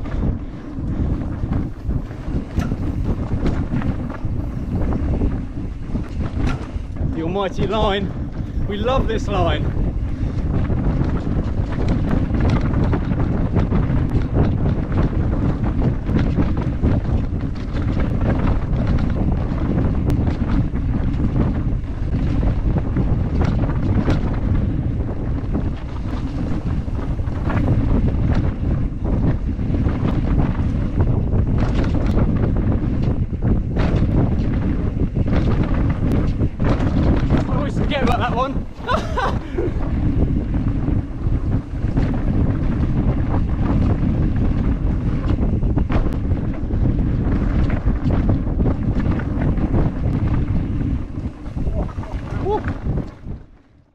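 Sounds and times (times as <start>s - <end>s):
bike rattling clicks and knocks: 0.0s - 53.9s
wind rush on microphone: 0.0s - 53.9s.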